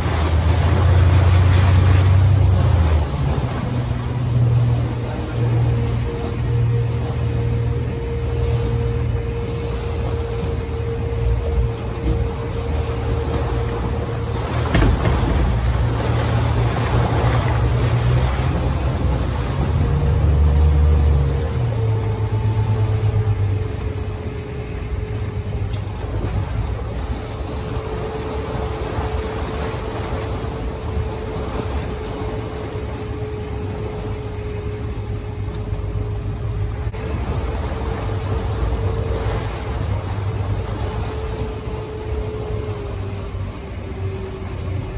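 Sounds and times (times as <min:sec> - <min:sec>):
churning wake rushing: 0:00.0 - 0:44.9
motorboat engine whining: 0:00.0 - 0:44.9.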